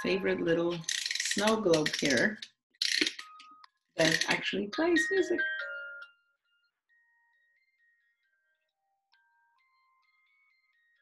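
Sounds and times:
music box tinkling melody: 0:03.3 - 0:06.2.

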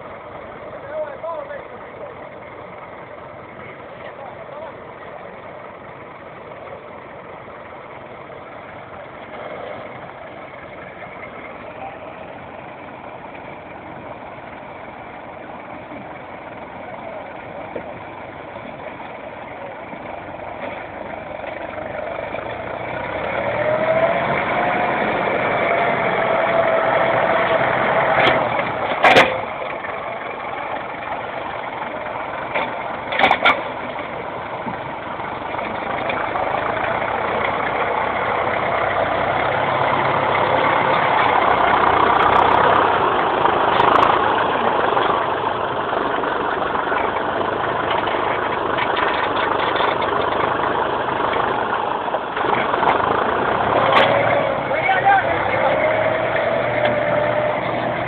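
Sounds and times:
tractor diesel engine under load: 0:00.0 - 0:58.0.

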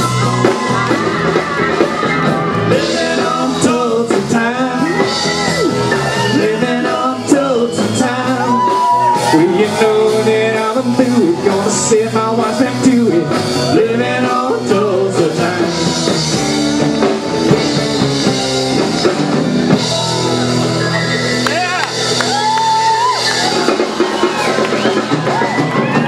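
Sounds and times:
live band playing country-rock: 0:00.0 - 0:26.0.

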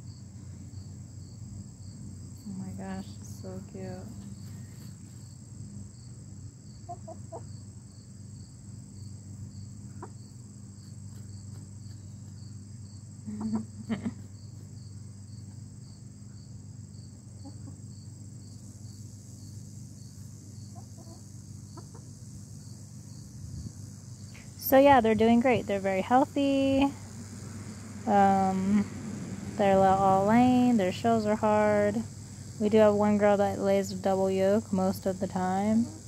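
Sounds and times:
crickets chirping: 0:00.0 - 0:36.0.

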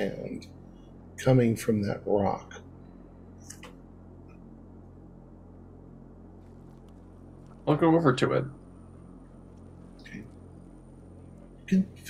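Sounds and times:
low electrical hum: 0:00.0 - 0:12.0.

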